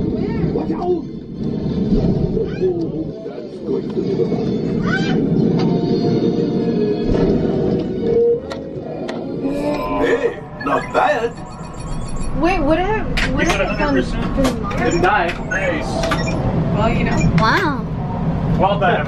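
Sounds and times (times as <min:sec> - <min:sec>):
deep rumble of effects: 0:00.0 - 0:19.0.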